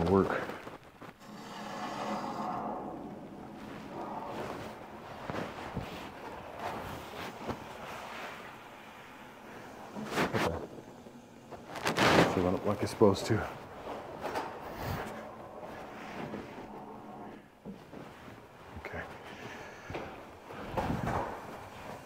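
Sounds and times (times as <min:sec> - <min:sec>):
footsteps: 0:00.0 - 0:10.9, 0:11.5 - 0:22.0
water hissing through pipes: 0:01.2 - 0:05.1
handling noises: 0:02.0 - 0:22.0.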